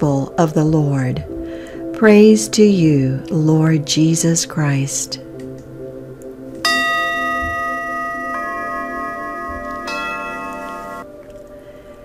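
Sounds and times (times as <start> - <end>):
soft background music: 0.0 - 12.0
struck chime tones: 6.7 - 11.0.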